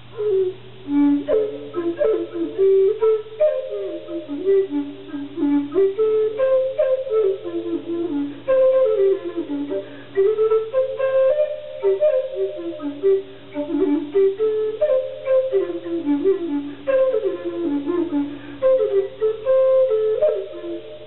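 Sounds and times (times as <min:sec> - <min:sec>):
wooden flute slow melody: 0:00.0 - 0:21.0.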